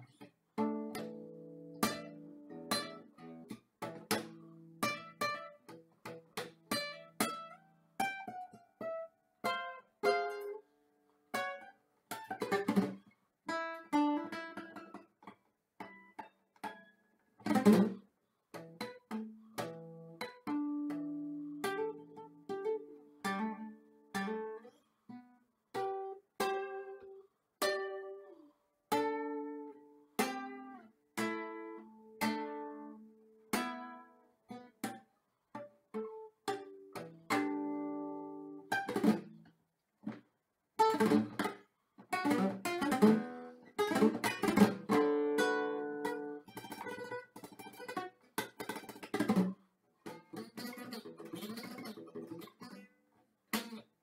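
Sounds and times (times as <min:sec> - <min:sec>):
acoustic guitar plucking: 0:00.0 - 0:10.6, 0:11.4 - 0:15.1, 0:15.8 - 0:40.2, 0:40.8 - 0:54.0.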